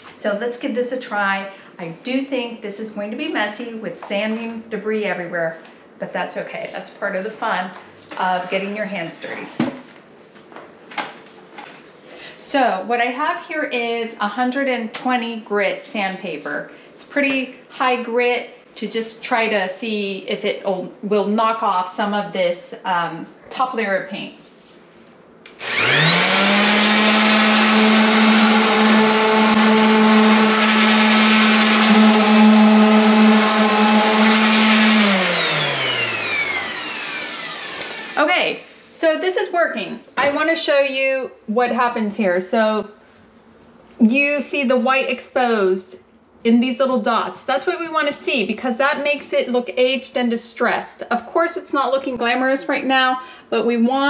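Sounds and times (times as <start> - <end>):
sander winding down whine: 25.5 - 38.2
orbital sander on drywall: 25.6 - 38.5.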